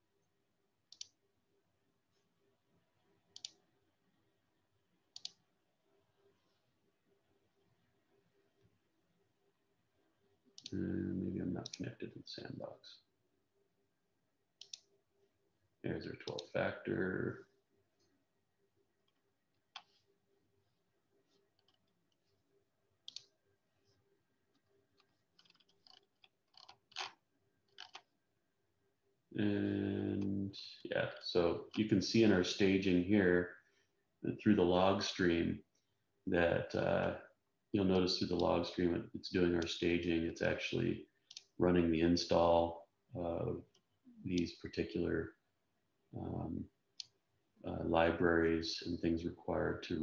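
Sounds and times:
computer mouse clicks: 0.9s - 1.2s, 3.3s - 3.6s, 5.1s - 5.4s, 14.6s - 14.9s, 19.1s - 20.0s, 23.0s - 23.3s, 24.6s - 28.1s, 41.3s - 41.5s.

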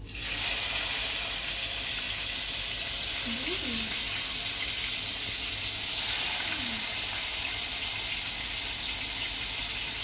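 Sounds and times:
hot oil sizzling in a pan: 0.0s - 10.0s.

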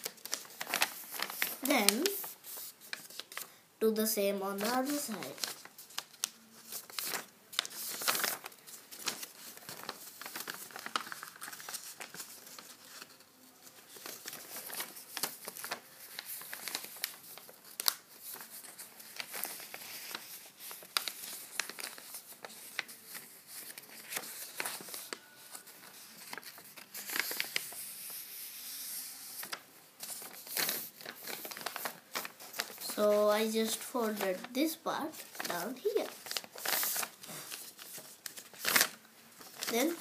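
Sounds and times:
paper rustling and crinkling: 0.0s - 3.5s, 4.2s - 40.0s
sharp paper crackles: 0.0s - 3.5s, 4.2s - 40.0s.

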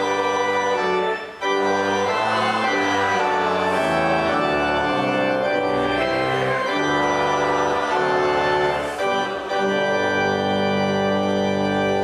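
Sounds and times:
church organ chords: 0.0s - 12.0s.

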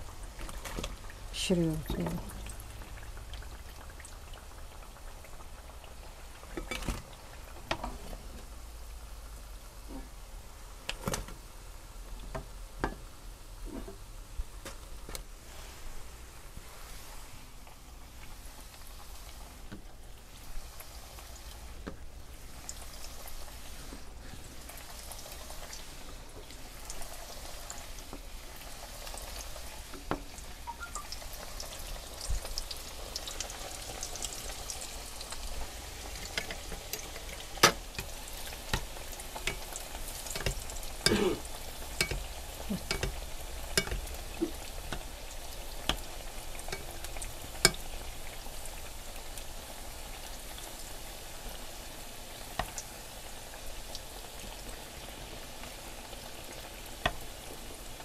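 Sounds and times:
oil sizzling in a pan: 0.0s - 58.0s
metal spoon clicking against pan: 39.5s - 39.7s, 42.0s - 42.3s, 42.9s - 43.2s, 43.8s - 44.1s.

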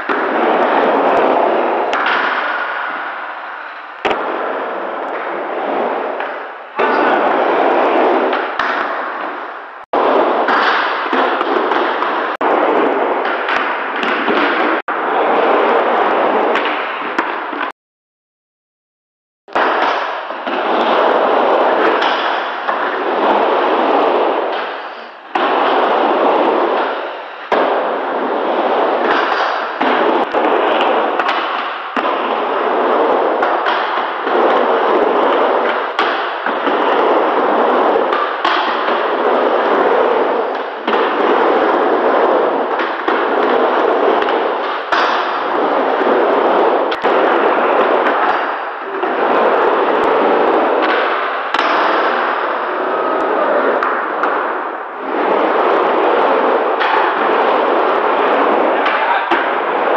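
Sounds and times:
skateboard wheels rumbling on wood: 0.0s - 17.7s, 19.5s - 59.9s.

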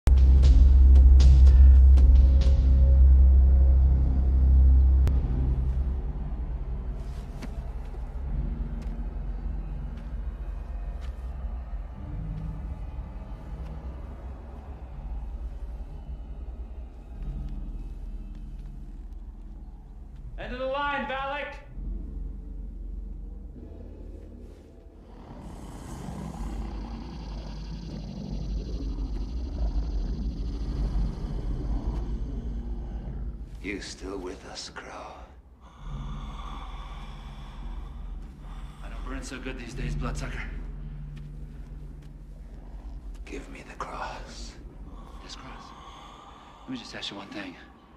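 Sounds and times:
low rumbling drone: 0.0s - 20.6s, 21.5s - 47.9s.

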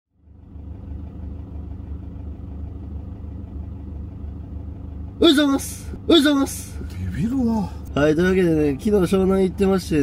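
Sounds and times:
vehicle engine rumble: 0.1s - 10.0s.

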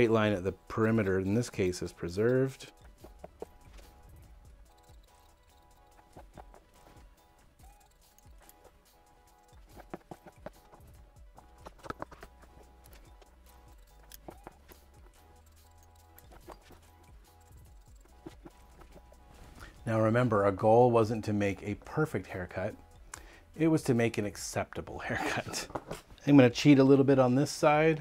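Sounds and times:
shears snipping hair: 2.9s - 8.8s, 9.4s - 19.2s.

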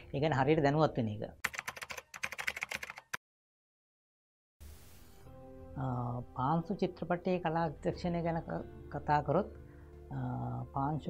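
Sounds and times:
rapid keyboard typing clicks: 1.4s - 3.2s.

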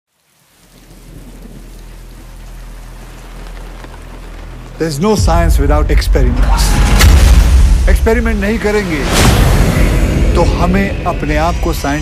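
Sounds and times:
rain falling on a car: 0.1s - 6.0s.

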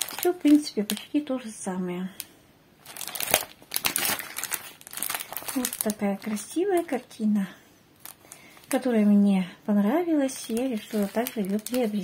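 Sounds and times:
plastic packaging crinkling: 0.0s - 1.3s, 2.8s - 7.1s, 8.0s - 8.9s, 10.2s - 12.0s.

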